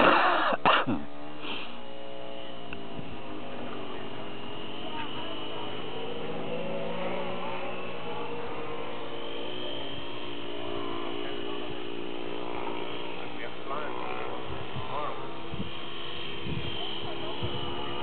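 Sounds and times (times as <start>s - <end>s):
model airplane motor droning: 0.0s - 18.0s.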